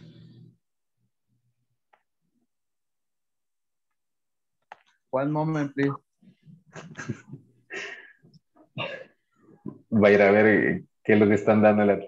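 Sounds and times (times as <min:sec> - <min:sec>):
person laughing breathily: 0:06.7 - 0:09.0.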